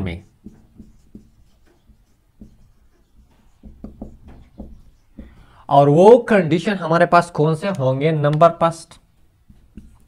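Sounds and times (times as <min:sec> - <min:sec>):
marker pen on whiteboard: 0:00.0 - 0:05.7, 0:07.6 - 0:10.0.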